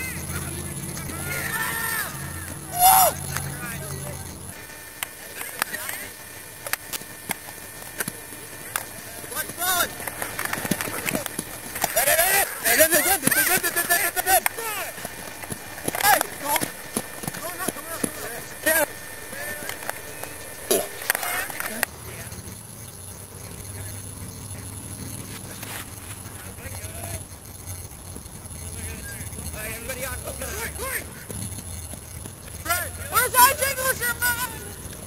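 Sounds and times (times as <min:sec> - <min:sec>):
young people shouting: 0:00.0 - 0:03.6
footsteps of people running: 0:09.0 - 0:21.9, 0:28.1 - 0:35.0.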